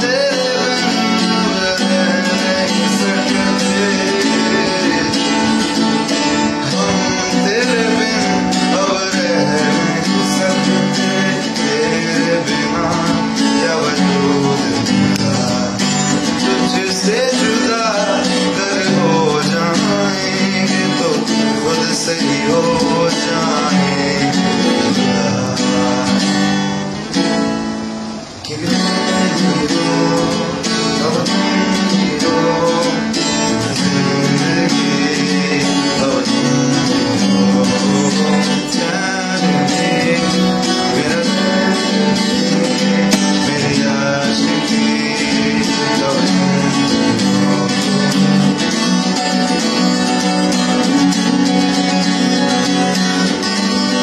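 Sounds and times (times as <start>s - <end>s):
man singing: 0.0s - 27.4s, 28.4s - 54.0s
guitar accompaniment: 0.0s - 54.0s.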